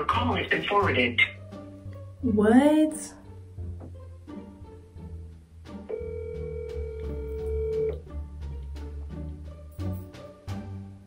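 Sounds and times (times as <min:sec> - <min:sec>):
background music: 0:00.0 - 0:11.0
telephone ringback tone: 0:05.9 - 0:08.0.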